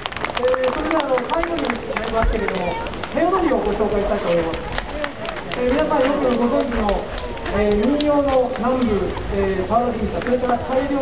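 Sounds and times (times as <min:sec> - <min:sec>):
people talking: 0:00.4 - 0:11.0.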